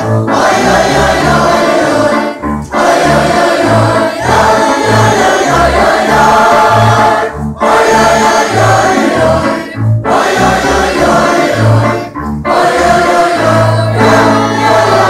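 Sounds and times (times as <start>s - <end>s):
choir singing folk song: 0.0s - 15.0s
upright bass plucking: 0.0s - 15.0s.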